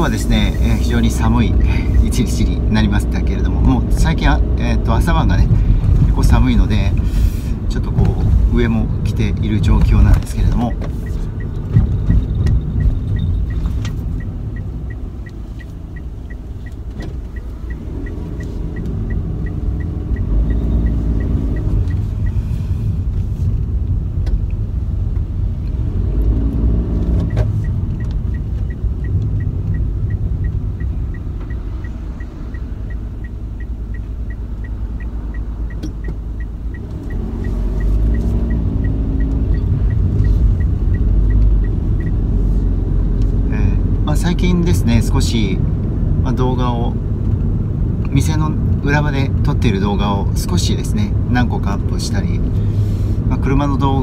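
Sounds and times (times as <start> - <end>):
car road and engine rumble: 0.0 - 54.0
turn signal ticking: 0.0 - 54.0.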